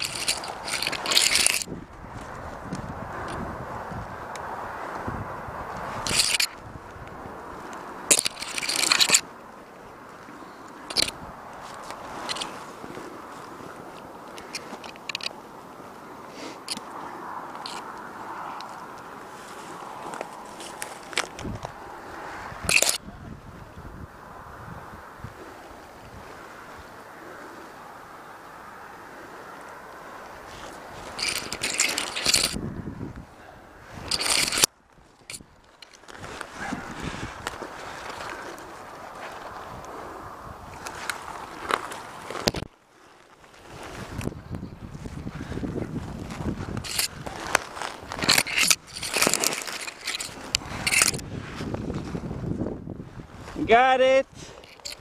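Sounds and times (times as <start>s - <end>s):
body scraping against tree bark: 0.0s - 23.6s, 29.0s - 55.0s.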